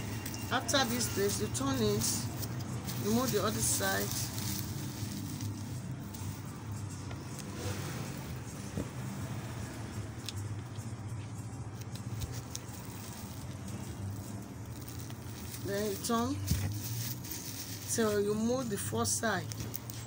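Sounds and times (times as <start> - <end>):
paper rustling: 0.0 - 8.0, 11.6 - 20.0.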